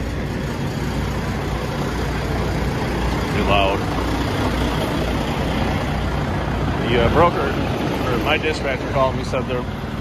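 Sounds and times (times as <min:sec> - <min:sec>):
truck engines idling: 0:00.0 - 0:10.0.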